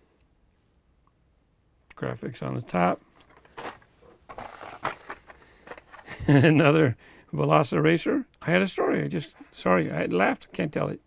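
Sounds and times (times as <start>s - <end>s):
plastic packaging clicks and rustling: 3.1s - 6.3s.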